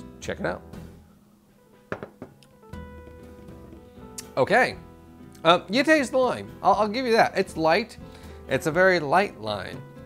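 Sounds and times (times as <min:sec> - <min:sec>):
quiet background music: 0:00.0 - 0:10.0
beer glass knocking on table: 0:01.9 - 0:02.4.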